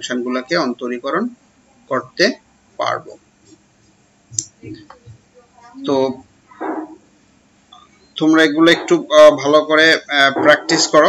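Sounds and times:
man speaking: 0.0s - 3.2s, 5.8s - 6.2s, 8.2s - 11.0s.

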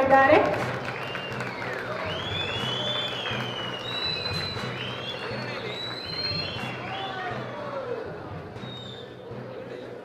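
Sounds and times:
audience applauding: 0.0s - 9.0s
crowd noise: 0.0s - 10.0s.

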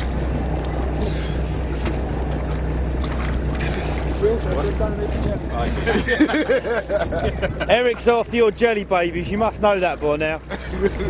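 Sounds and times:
boat engine humming: 0.0s - 11.0s
water noise: 0.0s - 11.0s
wind: 0.0s - 11.0s
voices and laughter: 5.5s - 8.4s, 10.3s - 11.0s.

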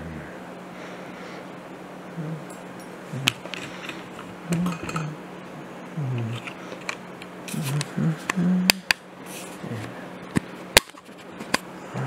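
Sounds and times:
low voice murmuring: 0.0s - 0.4s, 2.1s - 2.5s, 3.1s - 3.4s, 4.4s - 6.5s, 7.5s - 8.9s, 9.6s - 10.0s.

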